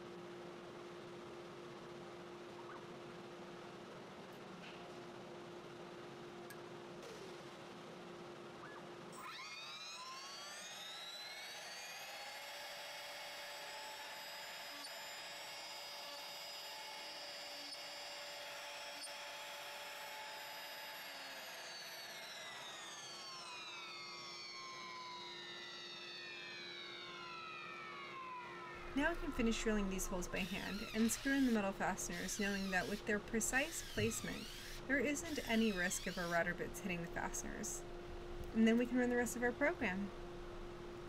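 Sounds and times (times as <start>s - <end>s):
router spindle whine: 8.6s - 38.3s
steady low hum: 28.6s - 41.0s.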